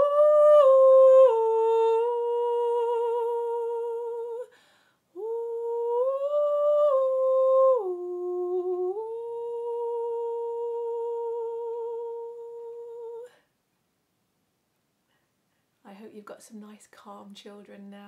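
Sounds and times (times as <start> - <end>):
woman humming a lullaby: 0.0 - 4.5, 5.2 - 13.4.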